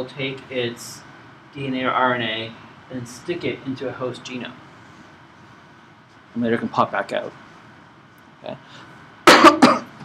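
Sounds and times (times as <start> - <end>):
man coughing: 9.2 - 10.0.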